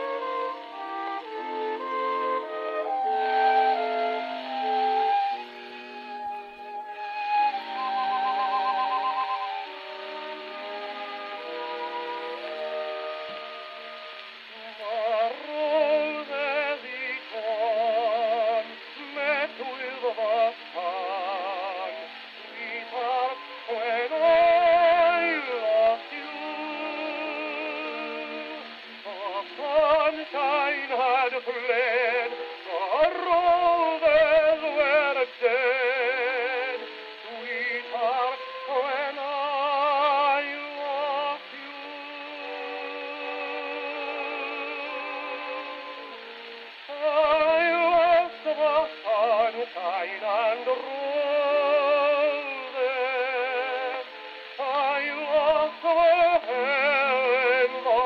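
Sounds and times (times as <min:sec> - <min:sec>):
gramophone record instrumental: 0:00.0 - 0:58.0
man singing with vibrato: 0:00.0 - 0:58.0.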